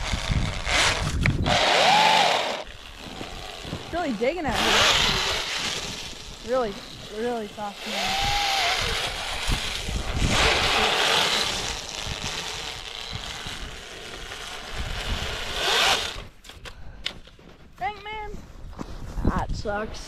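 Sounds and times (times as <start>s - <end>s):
boots crunching in snow: 2.8s - 7.7s.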